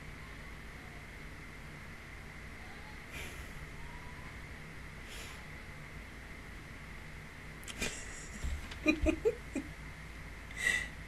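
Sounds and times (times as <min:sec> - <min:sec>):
faint high-pitched whine: 0:00.0 - 0:11.0
microphone hiss and hum: 0:00.0 - 0:11.0
person laughing: 0:07.7 - 0:09.7.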